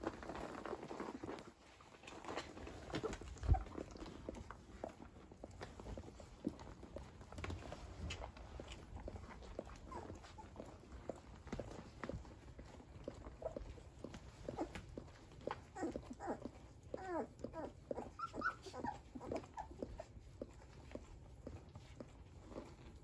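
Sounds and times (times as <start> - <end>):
puppies squeaking and whimpering: 2.6 - 4.5, 9.5 - 11.0, 13.0 - 20.6.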